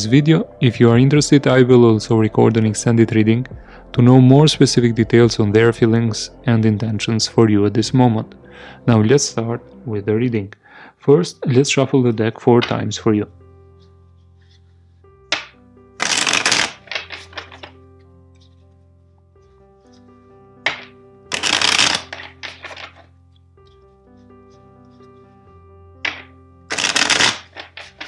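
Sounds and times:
soft background music: 0:00.0 - 0:28.0
deck tapping: 0:12.6 - 0:12.8, 0:15.3 - 0:17.7, 0:20.7 - 0:23.0, 0:26.1 - 0:28.0
cards pattering as they settle: 0:15.3 - 0:17.8, 0:20.7 - 0:24.2, 0:26.1 - 0:28.0
cards riffle-shuffled: 0:15.3 - 0:17.8, 0:20.7 - 0:23.8, 0:26.1 - 0:28.0.

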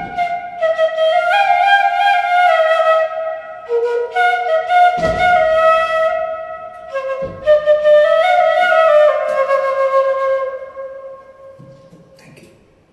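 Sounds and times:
bamboo flute melody: 0:00.0 - 0:12.2.

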